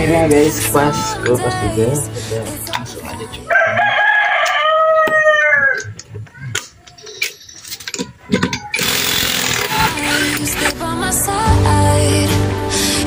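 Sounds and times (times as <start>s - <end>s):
rooster crowing: 3.5s - 5.9s
impact wrench buzzing: 8.7s - 10.8s.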